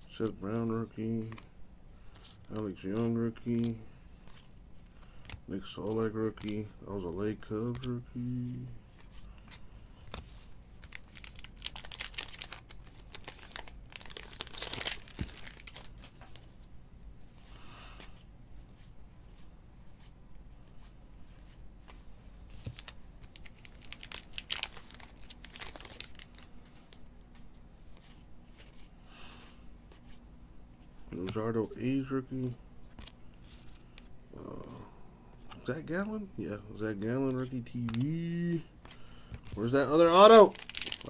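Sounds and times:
trading cards flipped through: 1.2s - 6.7s, 7.6s - 16.5s, 32.8s - 34.1s, 37.2s - 41.0s.

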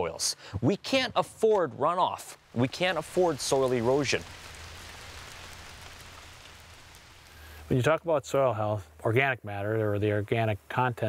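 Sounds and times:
rain on puddles and mud: 0.4s - 8.8s.

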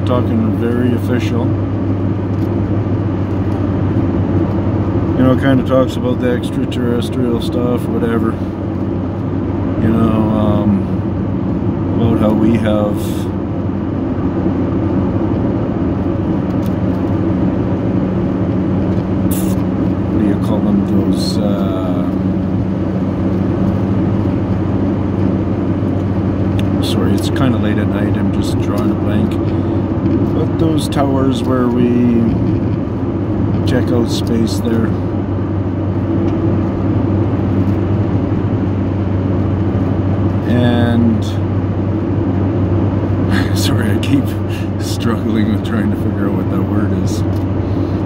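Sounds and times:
car engine hum: 0.0s - 48.0s
road and tyre noise: 0.0s - 48.0s.

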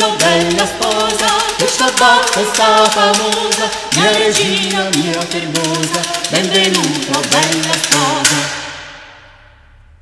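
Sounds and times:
vocal ensemble singing fast: 0.0s - 9.0s.

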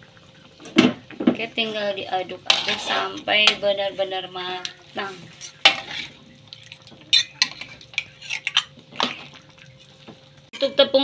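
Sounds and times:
spatula scraping and knocking wok: 1.4s - 4.2s, 5.0s - 6.3s, 7.1s - 8.8s.

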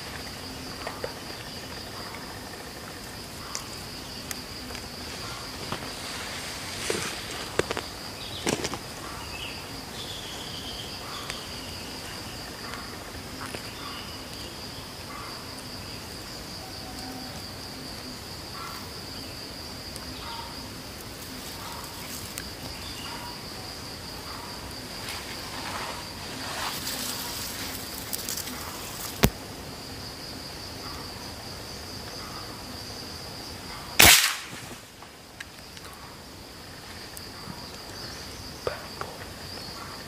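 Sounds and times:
insect trilling: 0.0s - 40.0s
rifle shot: 34.0s - 34.8s.

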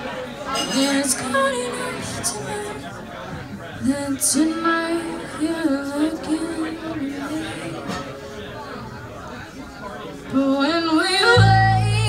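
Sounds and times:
soft voices: 0.0s - 12.0s
woman singing: 0.7s - 2.9s, 3.8s - 8.0s, 10.3s - 12.0s.

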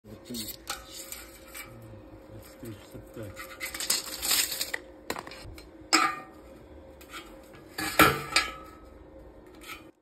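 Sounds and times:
faint steady hum: 0.1s - 10.0s.

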